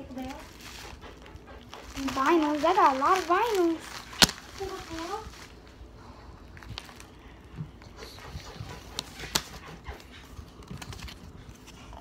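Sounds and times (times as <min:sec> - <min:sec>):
paper packaging rustling: 0:00.0 - 0:05.9, 0:06.5 - 0:07.2, 0:08.8 - 0:09.6, 0:10.2 - 0:12.0.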